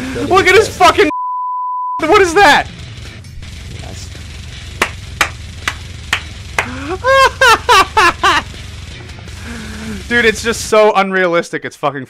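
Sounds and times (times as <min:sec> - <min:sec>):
low rumble of music: 0:02.2 - 0:10.8
man laughing hard: 0:06.6 - 0:08.5.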